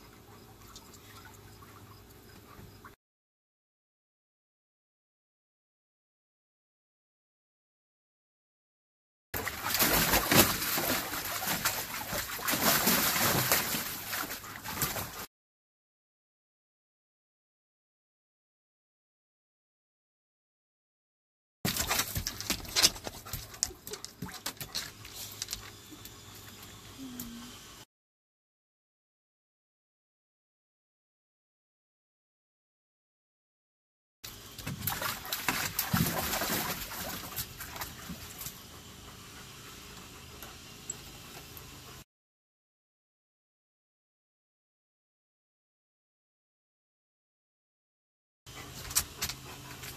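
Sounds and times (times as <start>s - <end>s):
water sloshing: 9.4s - 15.2s, 34.6s - 38.5s
dog splashing in water: 9.4s - 15.3s, 21.7s - 24.8s, 34.6s - 38.5s.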